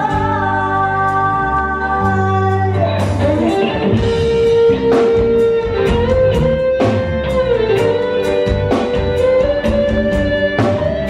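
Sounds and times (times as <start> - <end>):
electric guitar solo: 0.0 - 11.0
live band playing: 0.0 - 11.0.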